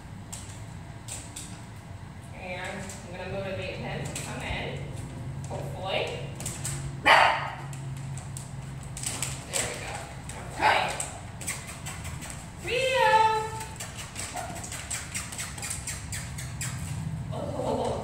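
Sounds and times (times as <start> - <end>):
dog barking: 7.0 - 7.6.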